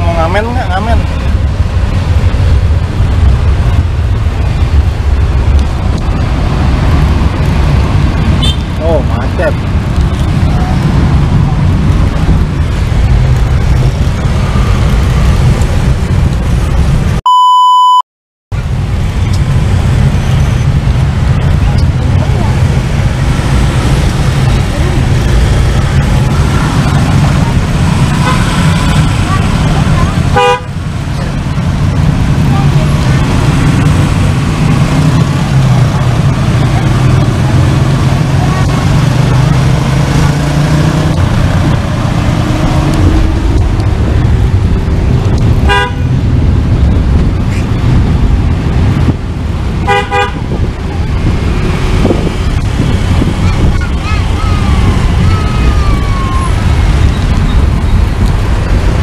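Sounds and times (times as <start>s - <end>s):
vehicle engine and road rumble: 0.0s - 59.0s
horn toot: 8.4s - 8.7s, 30.3s - 30.8s, 45.6s - 46.1s, 49.8s - 50.4s
electronic beep: 17.3s - 18.0s.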